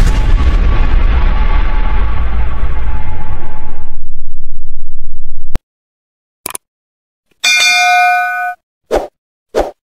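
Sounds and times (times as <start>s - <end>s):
electronic bell chime: 7.4s - 8.6s.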